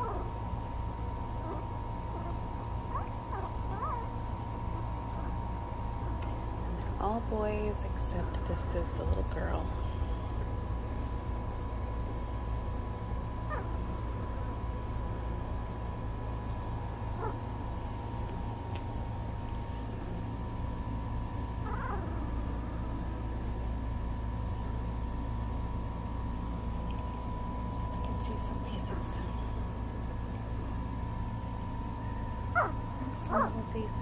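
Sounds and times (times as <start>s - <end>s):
steady low hum: 0.0s - 34.0s
puppies squeaking: 32.6s - 33.6s.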